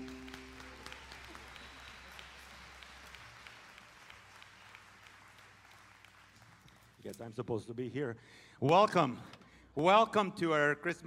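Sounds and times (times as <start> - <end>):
bowed strings held chord: 0.0 - 0.8
audience applause: 0.0 - 7.0.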